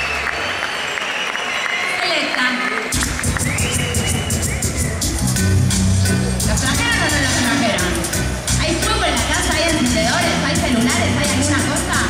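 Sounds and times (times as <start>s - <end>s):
crowd noise: 0.0s - 12.0s
reggae band playing: 3.0s - 12.0s.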